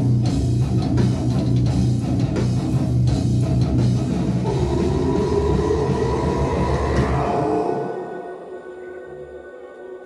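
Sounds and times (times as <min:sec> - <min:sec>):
rock band droning noise: 0:00.0 - 0:10.0.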